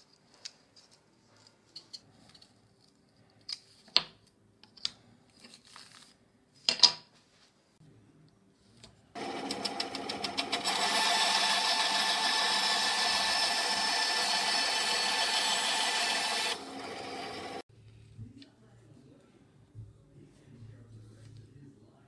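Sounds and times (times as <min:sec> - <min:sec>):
band saw cutting wood: 0:09.2 - 0:17.6.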